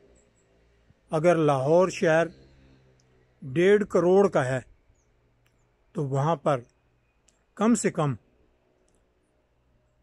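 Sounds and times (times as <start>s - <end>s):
man speaking: 1.1s - 2.3s, 3.4s - 4.7s, 6.0s - 6.6s, 7.6s - 8.2s.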